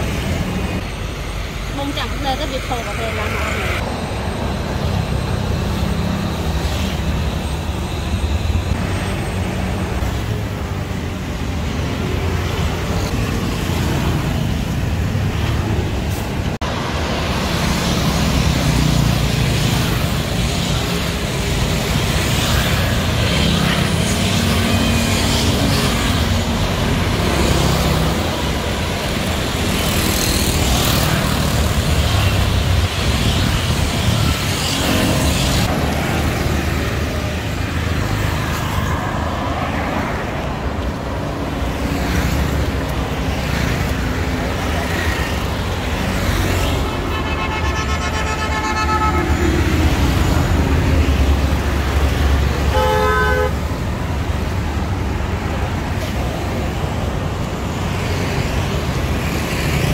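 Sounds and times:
motorbikes and cars passing: 0.0s - 59.9s.

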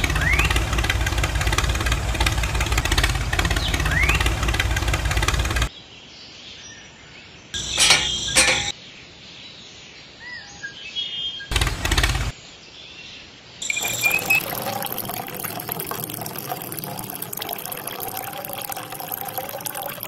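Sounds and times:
liquid pouring into a tank: 0.0s - 5.7s, 13.6s - 20.0s
faint bird chirps: 12.9s - 14.9s.

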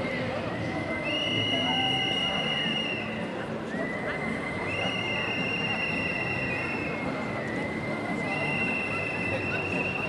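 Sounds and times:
whistles blowing long blasts: 0.9s - 3.2s, 3.8s - 10.0s.

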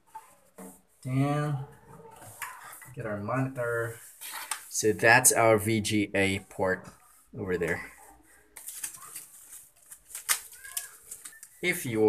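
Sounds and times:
plastic packaging crinkling: 8.4s - 12.0s.

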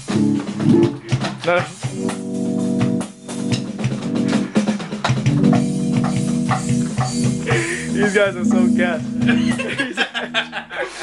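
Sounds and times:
electric guitar ringing chords: 0.0s - 1.2s, 1.9s - 4.6s, 5.3s - 10.9s.

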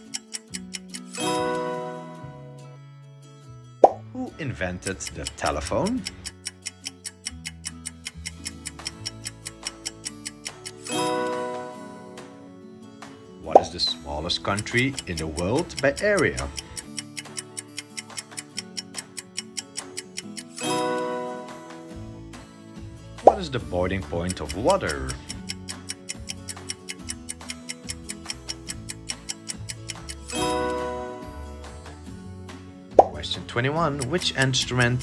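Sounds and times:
timer ticking: 0.0s - 1.5s, 4.5s - 11.4s, 14.4s - 21.0s, 23.2s - 32.0s, 33.0s - 35.0s
background music: 0.0s - 35.0s.

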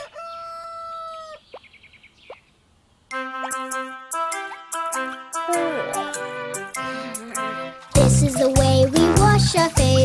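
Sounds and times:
cartoon rooster crowing: 0.0s - 1.4s
bright children's song: 3.1s - 10.0s.

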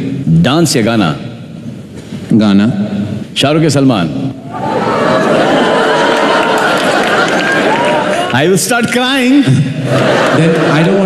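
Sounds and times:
audience cheering and clapping: 4.5s - 9.0s, 9.9s - 11.0s.

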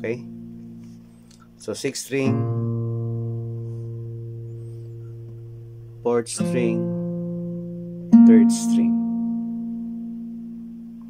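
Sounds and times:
acoustic guitar bass note ringing: 0.0s - 11.0s.

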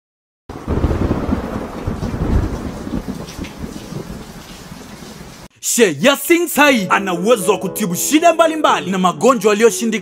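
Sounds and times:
thunder rumble: 0.5s - 4.8s
rain: 0.5s - 5.5s.

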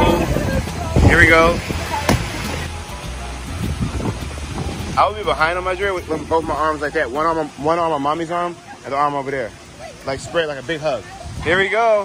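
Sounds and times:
wind rumbling on microphone: 0.0s - 7.3s, 9.9s - 12.0s
water sloshing and lapping: 0.0s - 12.0s.

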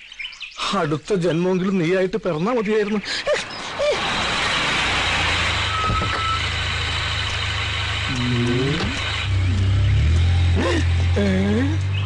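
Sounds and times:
car engine droning while driving: 3.6s - 12.0s.

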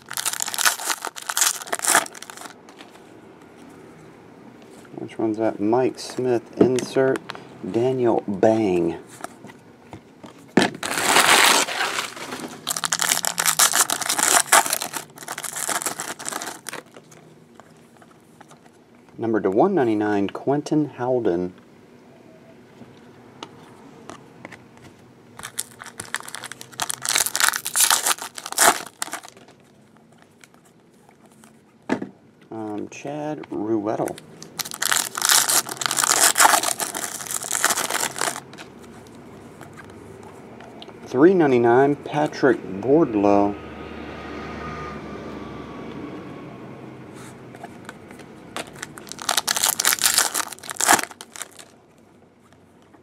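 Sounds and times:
card pack wrapper crinkling and tearing: 0.0s - 2.6s, 10.8s - 17.2s, 25.4s - 30.6s, 34.0s - 38.7s, 48.6s - 51.8s.

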